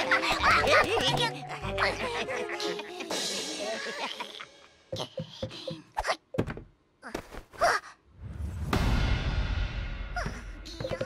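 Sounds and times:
cartoon hopping steps: 4.9s - 7.4s, 10.2s - 11.0s.

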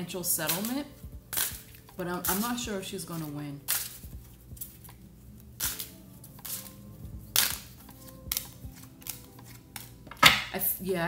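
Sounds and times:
cards snapped onto wooden table: 9.8s - 10.5s.

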